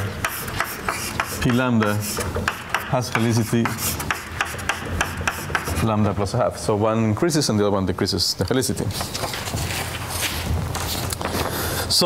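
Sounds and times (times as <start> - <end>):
person speaking: 0.0 - 4.2
chalk scratching on blackboard: 0.0 - 6.0.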